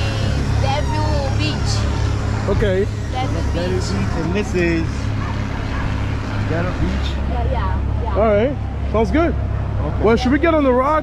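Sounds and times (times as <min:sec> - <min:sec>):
voices talking outdoors: 0:00.0 - 0:11.0.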